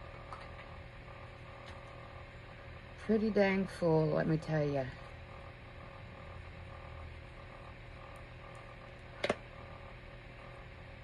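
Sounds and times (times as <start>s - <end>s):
faint constant tones: 0.0s - 11.0s
room hum and hiss: 0.0s - 11.0s.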